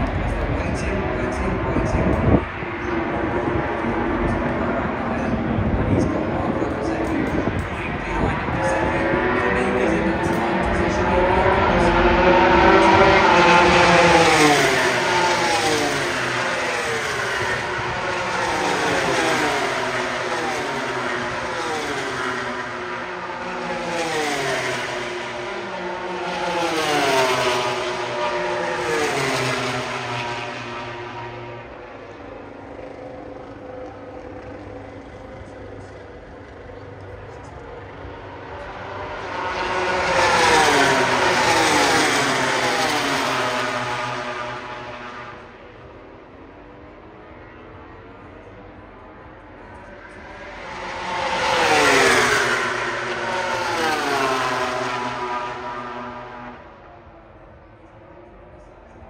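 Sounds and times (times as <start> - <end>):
race bikes passing at high revs: 0.0 - 48.9, 49.5 - 57.1.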